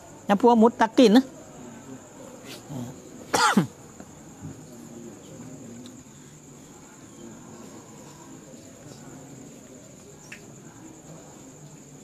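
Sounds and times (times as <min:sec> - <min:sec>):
crickets trilling: 0:00.0 - 0:12.0
man coughing: 0:03.3 - 0:03.7.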